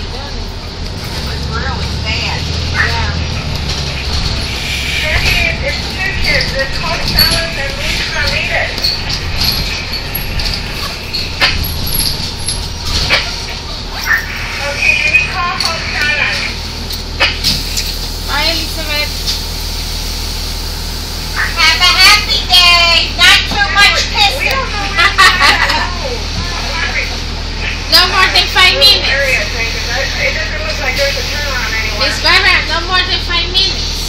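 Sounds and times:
indistinct voices: 0:00.0 - 0:17.4, 0:21.3 - 0:34.0
low vehicle rumble: 0:00.0 - 0:34.0.

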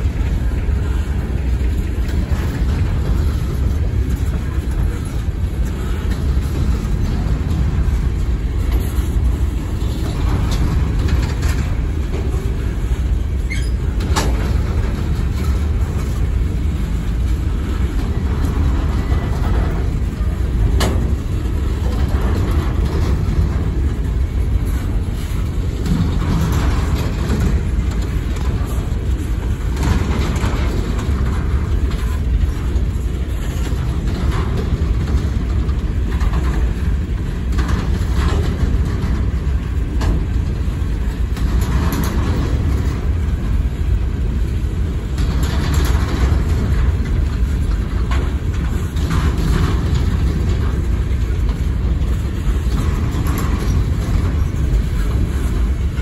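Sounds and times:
steel wheels rumbling on rail: 0:00.0 - 0:56.0
train cars clanking and rattling: 0:00.0 - 0:56.0.

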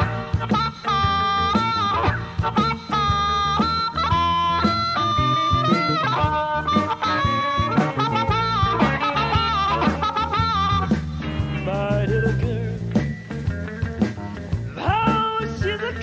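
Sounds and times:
blues harmonica bent notes: 0:00.0 - 0:16.0
electric blues band playing: 0:00.0 - 0:16.0.

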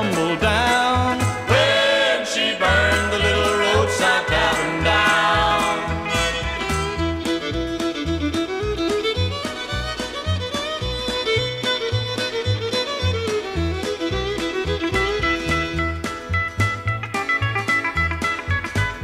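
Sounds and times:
bass line: 0:00.0 - 0:19.0
fiddle melody: 0:00.0 - 0:19.0.

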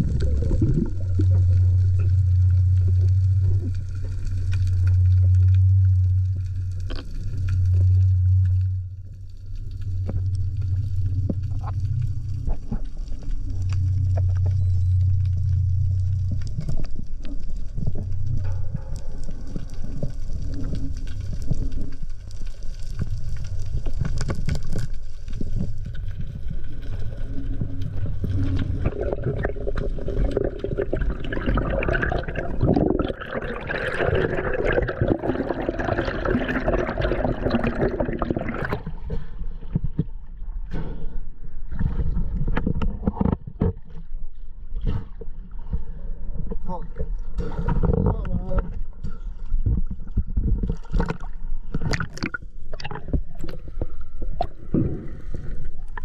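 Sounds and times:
underwater clicks and ticks: 0:00.0 - 0:41.0, 0:41.6 - 0:56.0
low rumbling water noise: 0:00.0 - 0:56.0
rushing gurgling water: 0:27.0 - 0:39.1.

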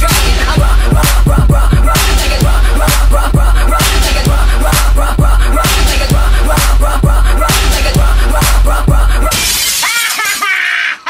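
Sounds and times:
hip-hop beat: 0:00.0 - 0:11.0.

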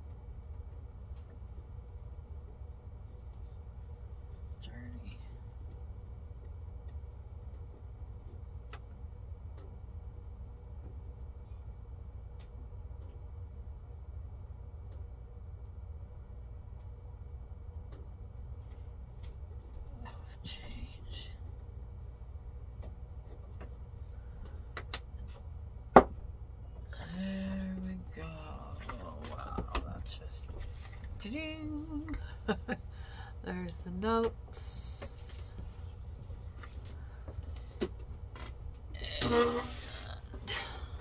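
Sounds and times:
steady low hum: 0:00.0 - 0:41.0
person speaking: 0:19.9 - 0:21.5, 0:27.0 - 0:32.2, 0:33.4 - 0:35.6.

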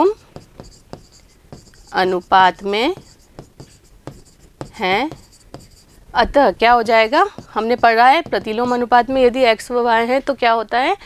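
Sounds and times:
chalk scratching on board: 0:00.0 - 0:09.6.

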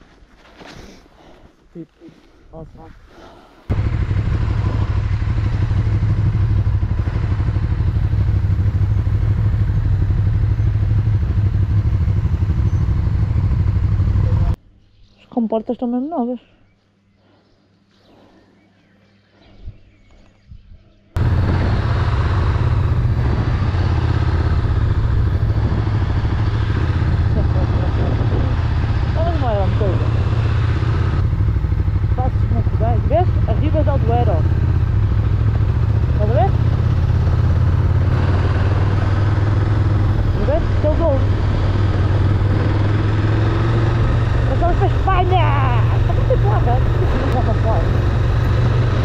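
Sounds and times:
motorcycle engine running: 0:03.7 - 0:14.6, 0:21.2 - 0:49.0
riding wind noise: 0:03.7 - 0:14.6, 0:20.5 - 0:49.0.

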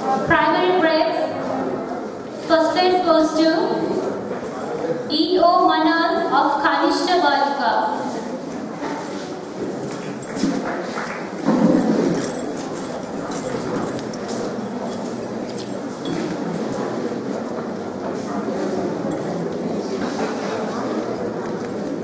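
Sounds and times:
murmuring voices: 0:07.8 - 0:22.0
audience clapping: 0:10.2 - 0:12.8.

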